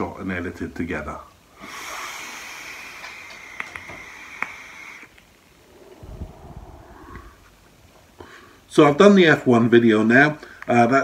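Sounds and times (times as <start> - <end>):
vape airflow hiss with coil sizzle: 1.6 - 6.0
breathy exhale: 1.6 - 8.7.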